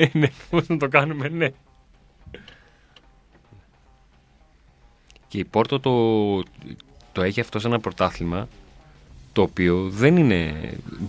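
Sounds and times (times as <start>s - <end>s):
faint clicks: 2.3s - 3.6s.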